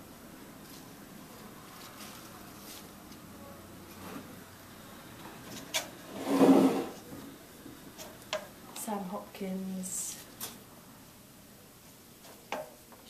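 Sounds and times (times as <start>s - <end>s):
stems and leaves rustling: 0.6s - 4.4s.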